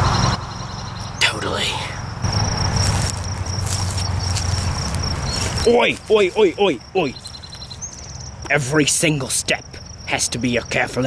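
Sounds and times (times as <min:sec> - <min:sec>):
insect trilling: 0:00.4 - 0:11.0.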